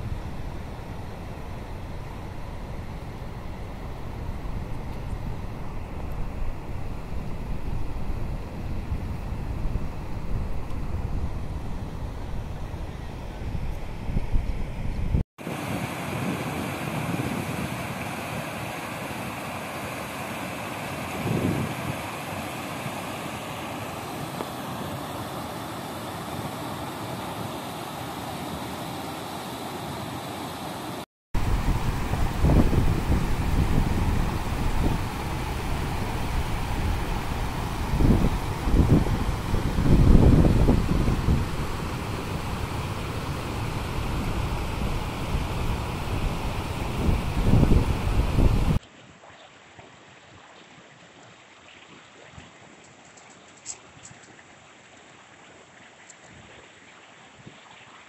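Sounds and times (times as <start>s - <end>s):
wind buffeting microphone: 0.0s - 18.0s, 21.1s - 22.2s, 31.4s - 48.8s.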